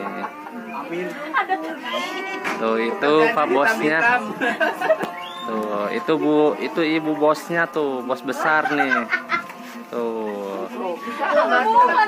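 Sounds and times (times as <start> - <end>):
chatter of people talking: 0.0 - 12.0.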